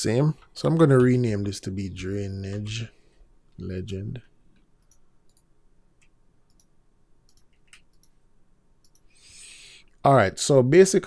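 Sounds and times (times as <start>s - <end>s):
person talking: 0.0s - 3.0s, 3.6s - 4.3s
computer mouse clicks: 4.5s - 8.2s, 8.8s - 9.2s
soft intake of breath: 9.1s - 10.0s.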